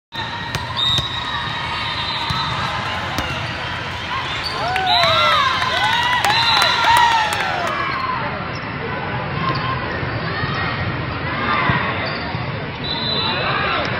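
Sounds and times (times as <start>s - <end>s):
spectators chattering: 0.1s - 11.6s
ball slaps: 0.2s - 4.6s
sneakers squeaking on floor: 0.2s - 5.3s.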